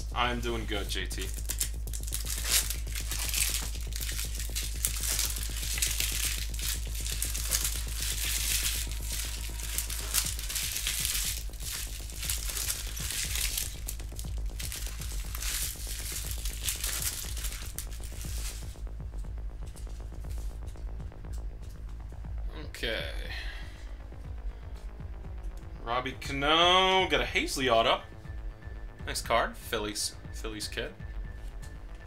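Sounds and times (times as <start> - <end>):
trading cards rustling: 0.0 - 18.8
background music with bass: 0.0 - 32.0.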